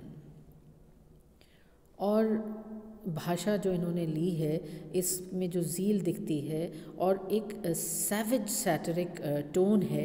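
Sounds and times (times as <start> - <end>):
woman breathing in: 1.4 - 1.9
woman speaking: 2.0 - 10.0.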